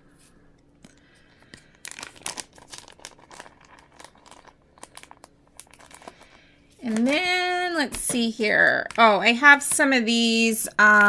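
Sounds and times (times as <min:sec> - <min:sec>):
plastic crinkling: 0:00.8 - 0:09.3.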